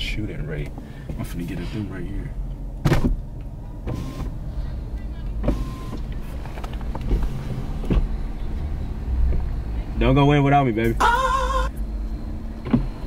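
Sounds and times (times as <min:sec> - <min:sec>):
car engine and road rumble: 0:00.0 - 0:13.0.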